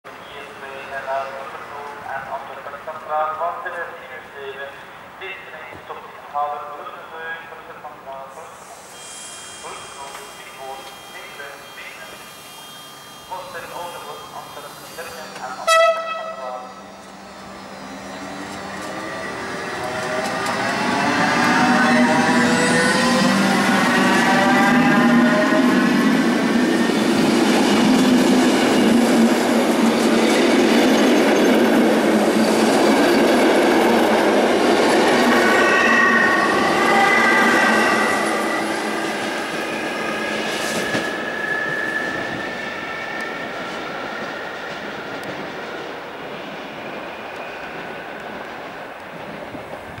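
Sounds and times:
electric train whine: 7.7s - 50.0s.

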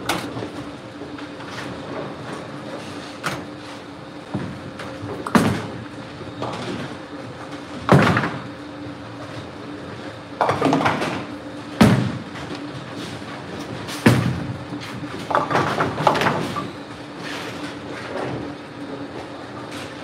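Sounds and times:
bowling balls hitting lane: 10.4s - 12.4s.

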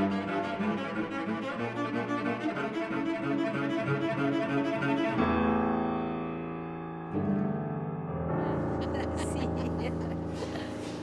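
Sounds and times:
low bowed strings: 0.0s - 6.0s
piano: 0.0s - 11.0s.

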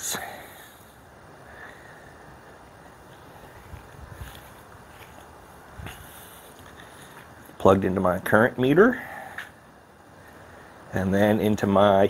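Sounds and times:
outdoor background noise: 0.0s - 12.0s
footsteps on grass: 3.0s - 7.4s.

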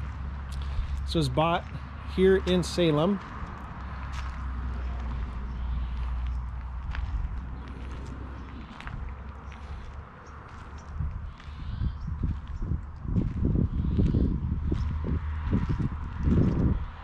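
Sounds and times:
footsteps on gravel: 0.0s - 17.0s
steady low rumble: 0.0s - 17.0s.

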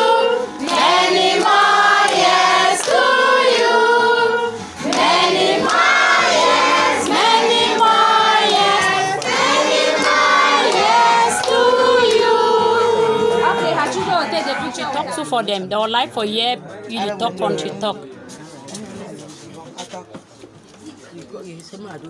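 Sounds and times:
group of people singing: 0.0s - 15.1s.

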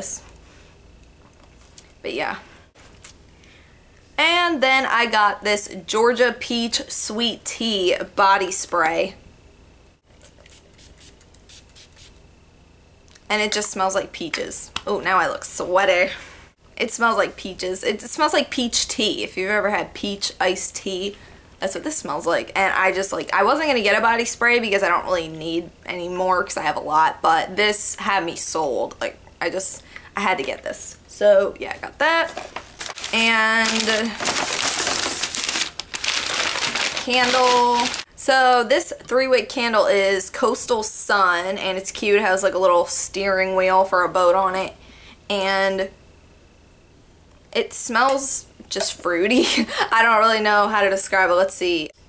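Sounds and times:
tissue paper crinkling: 32.2s - 38.1s.

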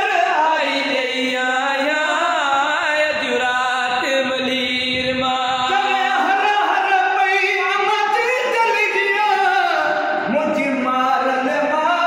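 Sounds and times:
man chanting devotional verse: 0.0s - 12.0s.

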